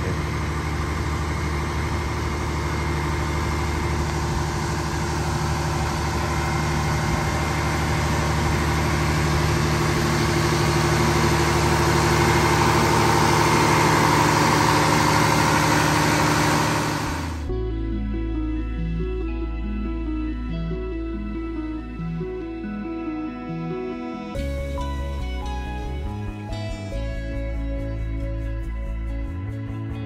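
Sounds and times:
diesel generators running: 0:00.0 - 0:30.0.

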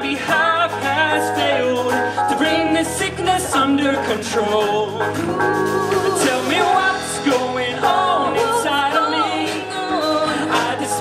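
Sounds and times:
voices singing together: 0:00.0 - 0:03.8, 0:05.0 - 0:11.0
live band playing: 0:00.0 - 0:11.0.

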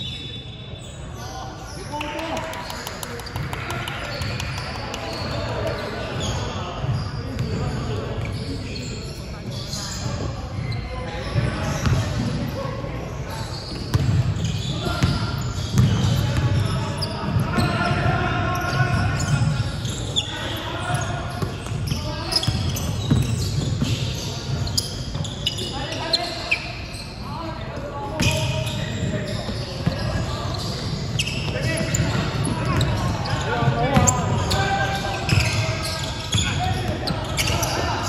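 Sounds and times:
basketball bouncing on wooden floor: 0:15.0 - 0:16.0.

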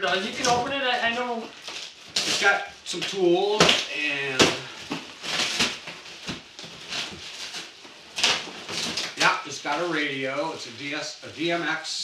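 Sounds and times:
plastic packaging rustling: 0:00.0 - 0:11.9.

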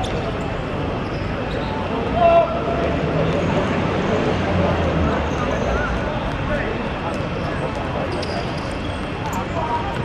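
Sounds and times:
players' voices: 0:00.0 - 0:10.0
loud shouted call: 0:02.1 - 0:02.8.

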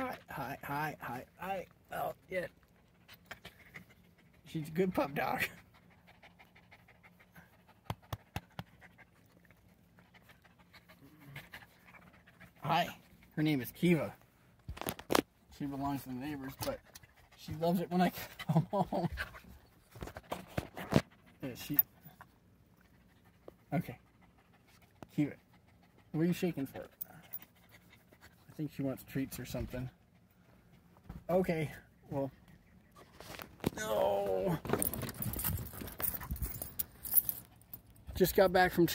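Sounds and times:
dog panting: 0:02.5 - 0:14.1, 0:16.0 - 0:31.4.

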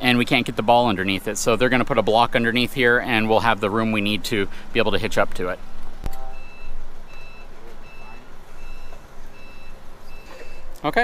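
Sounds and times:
forklift reversing alarm beeping: 0:06.0 - 0:10.8.

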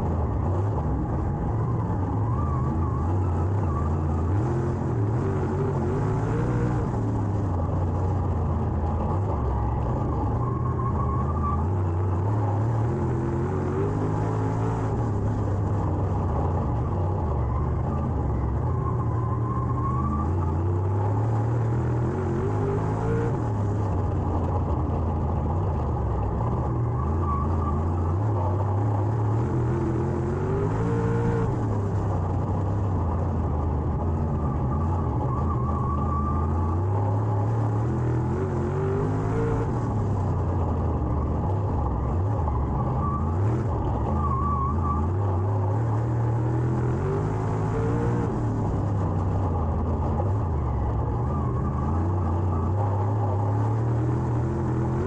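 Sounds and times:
race car engine revving: 0:02.5 - 0:55.0.

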